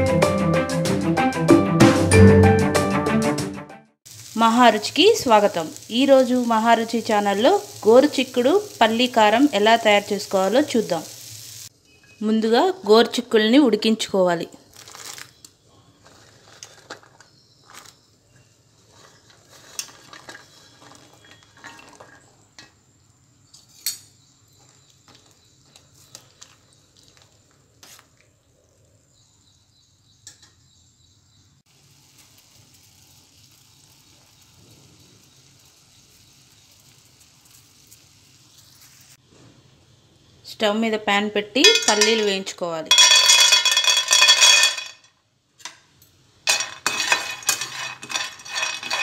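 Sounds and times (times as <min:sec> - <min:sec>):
beans boiling in water: 0:04.1 - 0:11.7, 0:14.7 - 0:23.6, 0:24.3 - 0:28.5, 0:31.7 - 0:45.6, 0:46.2 - 0:49.0
faint steady hiss: 0:04.1 - 0:14.0, 0:31.6 - 0:49.0
metal spoon clinking against pot: 0:41.6 - 0:45.8, 0:46.5 - 0:49.0.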